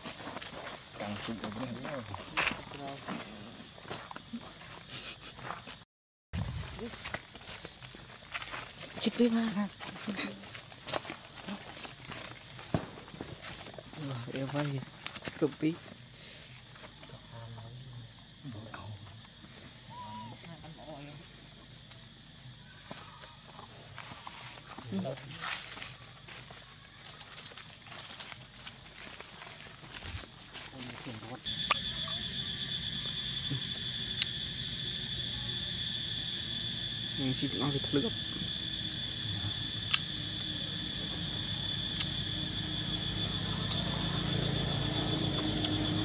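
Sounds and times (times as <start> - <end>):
shrill insect chorus: 0.0 - 5.8, 6.4 - 46.0
dry leaves crackling: 24.0 - 31.6
low hum: 31.5 - 46.0.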